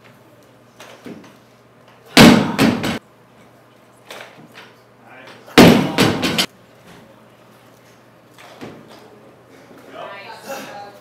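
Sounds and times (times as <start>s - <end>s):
barbell dropped on wooden platform: 5.6s - 6.5s.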